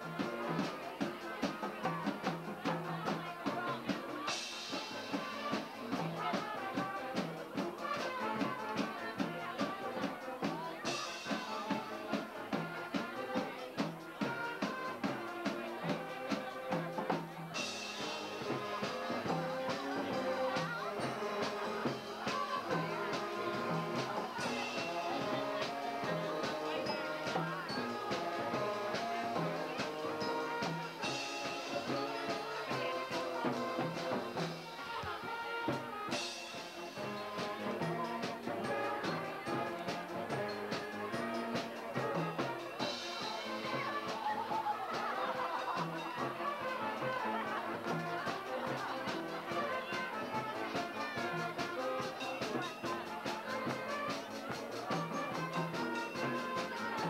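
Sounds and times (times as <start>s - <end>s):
brass band music: 0.0s - 57.0s.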